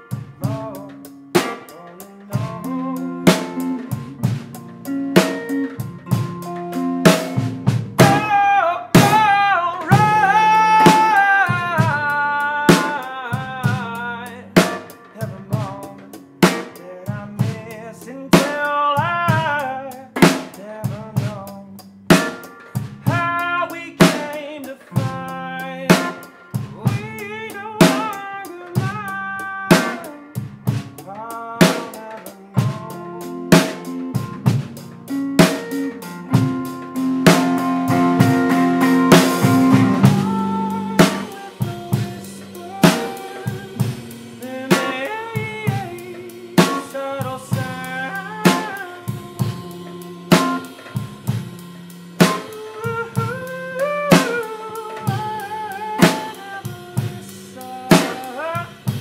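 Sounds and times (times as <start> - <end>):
acoustic guitar: 0.0 - 59.0
drum kit beat: 0.0 - 59.0
man singing with vibrato: 0.0 - 59.0.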